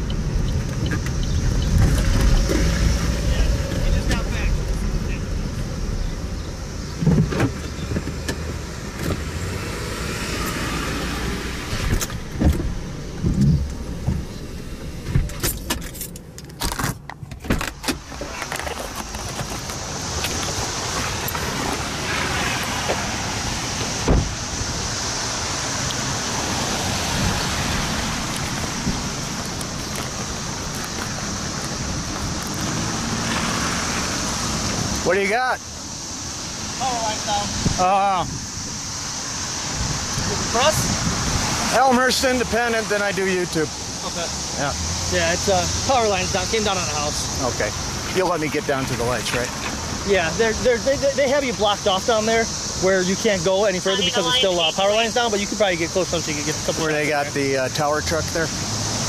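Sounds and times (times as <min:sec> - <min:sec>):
car cabin road rumble: 0:00.0 - 0:59.0
outdoor noise with high hiss: 0:00.0 - 0:59.0.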